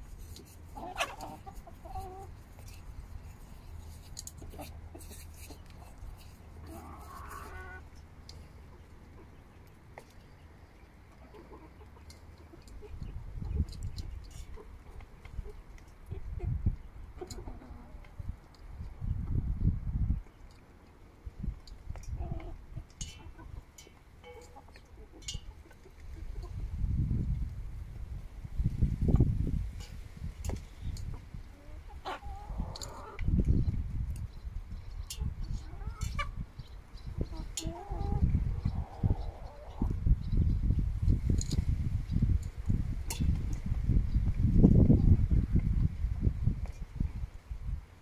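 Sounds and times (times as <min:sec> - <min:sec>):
chickens clucking: 0:00.1 - 0:27.5, 0:28.6 - 0:46.8.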